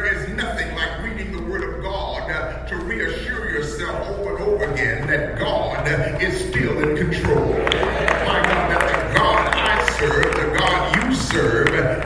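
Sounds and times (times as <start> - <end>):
person speaking: 0.0 - 12.0
hand-clapping: 6.1 - 12.0.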